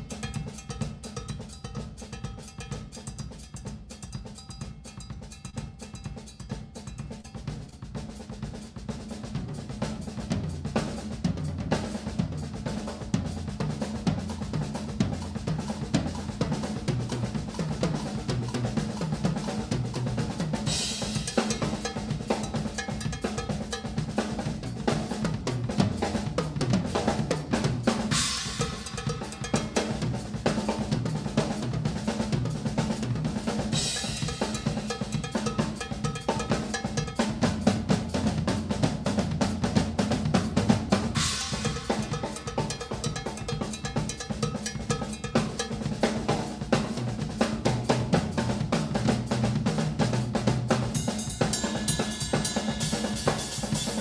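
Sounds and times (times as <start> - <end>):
bass drum and snare: 0.0 - 54.0
cymbal crashes: 20.6 - 25.2, 26.5 - 31.7, 33.6 - 38.6, 40.4 - 47.0, 50.8 - 54.0.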